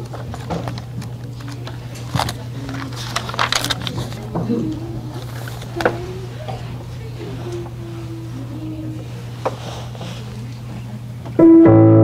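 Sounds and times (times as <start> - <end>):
low electrical hum: 0.0 - 12.0.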